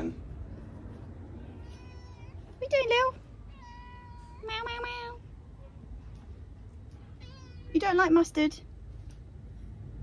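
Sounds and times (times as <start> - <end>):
cat meowing: 1.4 - 2.6, 3.4 - 5.3, 7.1 - 7.9.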